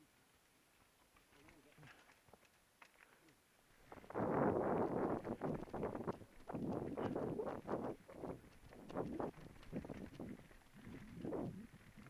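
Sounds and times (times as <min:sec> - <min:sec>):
bike rattling over rock: 0:03.8 - 0:12.0
tyre rumble: 0:03.9 - 0:12.0
wind buffeting microphone: 0:03.9 - 0:12.0.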